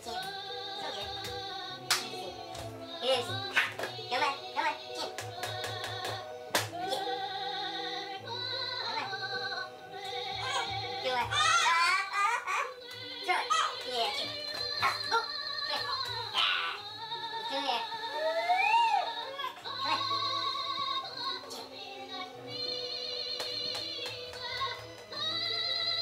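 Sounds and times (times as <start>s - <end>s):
music with singing voice: 0.0s - 26.0s.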